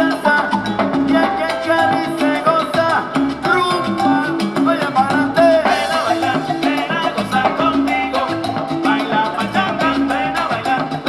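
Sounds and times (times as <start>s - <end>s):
percussion beat: 0.0s - 11.0s
salsa band playing: 0.0s - 11.0s.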